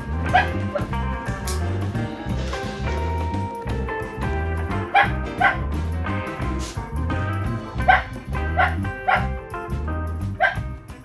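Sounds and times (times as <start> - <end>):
background music: 0.0 - 11.0
dog barking in high yips: 0.3 - 0.9, 4.9 - 5.6, 7.9 - 9.3, 10.4 - 10.6.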